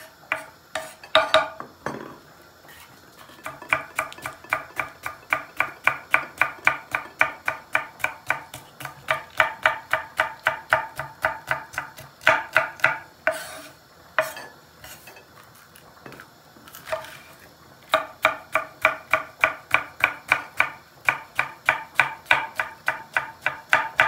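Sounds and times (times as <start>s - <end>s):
knife scraping strokes: 0.0s - 1.1s, 2.7s - 3.6s, 13.3s - 15.2s, 16.7s - 17.4s
knife chopping on wooden board: 3.3s - 14.4s, 17.9s - 24.0s.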